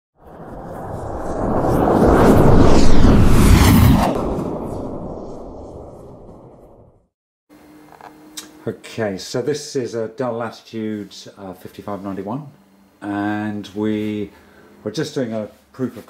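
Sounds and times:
whooshing rumble: 0:00.2 - 0:07.1.

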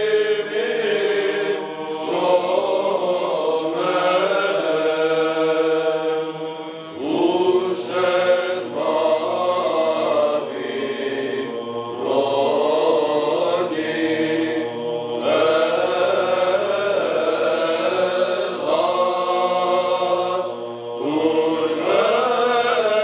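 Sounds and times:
chant vocal phrases: 0:00.0 - 0:23.0
low vocal drone: 0:00.0 - 0:23.0.

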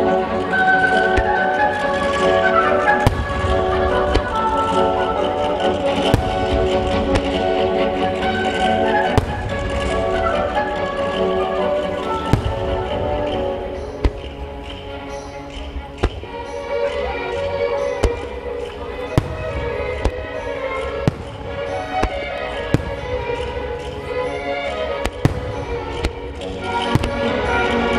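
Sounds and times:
orchestral music: 0:00.0 - 0:27.9
fireworks banging: 0:00.6 - 0:27.9.

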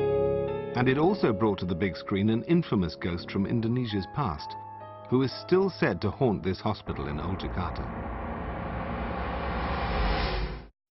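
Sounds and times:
low rumbling drone: 0:06.9 - 0:10.7.

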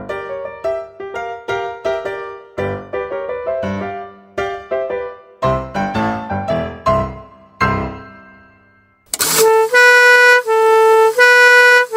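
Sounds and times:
two-tone air horn: 0:09.1 - 0:11.9.

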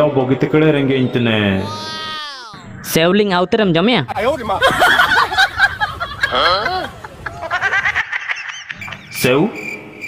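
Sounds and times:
high-pitched cartoon voice crying: 0:01.6 - 0:02.7.

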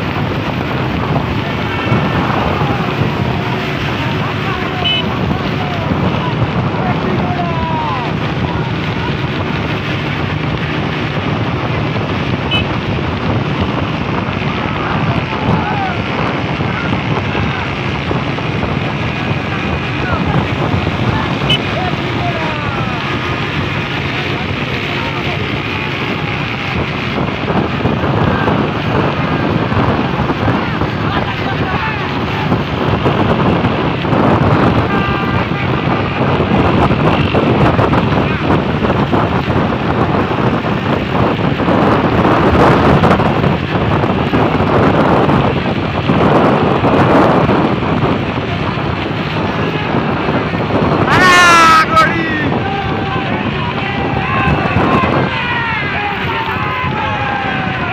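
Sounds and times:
road noise: 0:00.0 - 0:57.9
wind buffeting microphone: 0:00.0 - 0:57.9
men shouting: 0:00.8 - 0:09.3, 0:14.6 - 0:17.9, 0:18.9 - 0:25.6, 0:34.6 - 0:36.5, 0:50.8 - 0:57.9.

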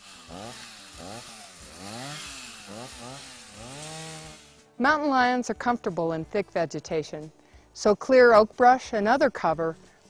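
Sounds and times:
chainsaw revving: 0:00.0 - 0:04.7.

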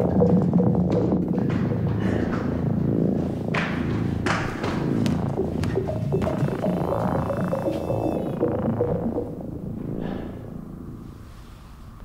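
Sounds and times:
low ominous drone: 0:00.0 - 0:12.0.

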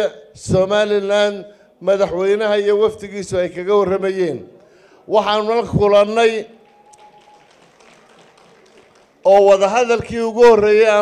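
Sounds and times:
faint venue background noise: 0:00.0 - 0:11.0.

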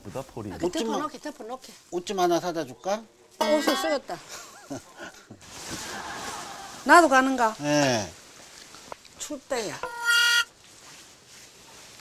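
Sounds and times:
loud horn-like tone: 0:09.8 - 0:10.5.

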